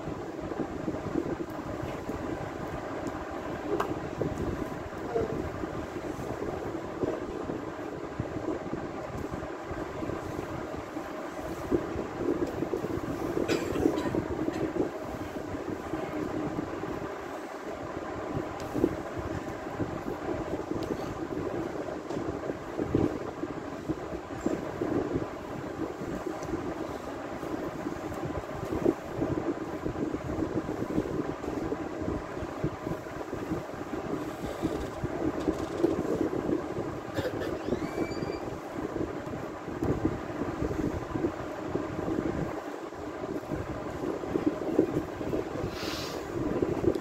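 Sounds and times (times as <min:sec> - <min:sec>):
low rumbling background noise: 0:00.0 - 0:47.0.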